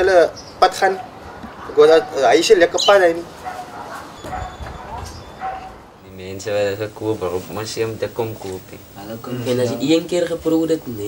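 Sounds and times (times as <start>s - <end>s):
faint dog barks: 0.8s - 2.6s, 3.3s - 6.0s.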